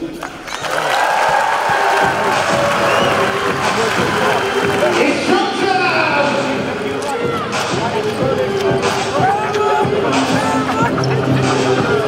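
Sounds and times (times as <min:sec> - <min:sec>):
arena crowd voices: 0:00.0 - 0:12.0.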